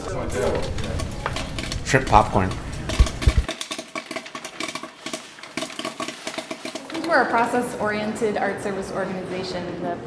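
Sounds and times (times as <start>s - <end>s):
food frying in hot oil: 0.4s - 7.8s.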